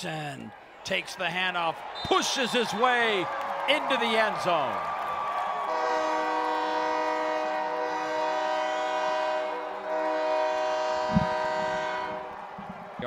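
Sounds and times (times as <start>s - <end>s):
train air horn chord: 5.7s - 12.4s.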